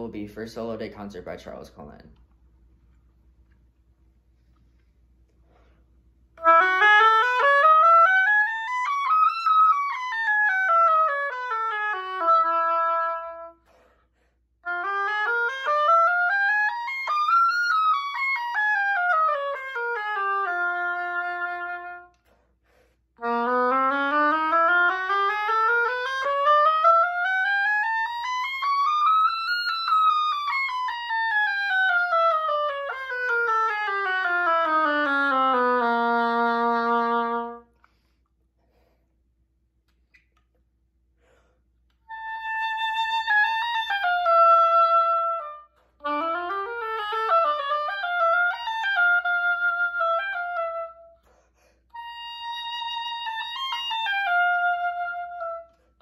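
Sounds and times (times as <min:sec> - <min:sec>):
oboe playing scales: 0:06.3 - 0:14.0, 0:14.6 - 0:22.4, 0:23.2 - 0:38.0, 0:41.9 - 0:56.0.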